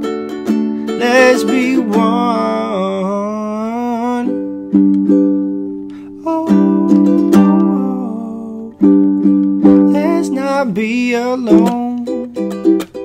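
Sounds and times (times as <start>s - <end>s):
ukulele chords strummed: 0.0s - 13.0s
man singing held note: 1.0s - 4.3s, 6.1s - 8.8s.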